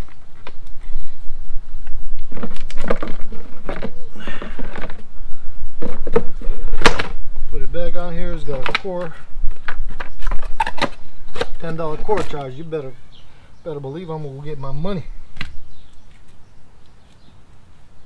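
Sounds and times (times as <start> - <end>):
person speaking: 11.5 - 15.2.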